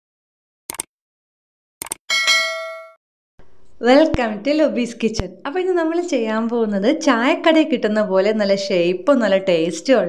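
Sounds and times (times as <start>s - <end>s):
bright bell ding: 2.1s - 3.0s.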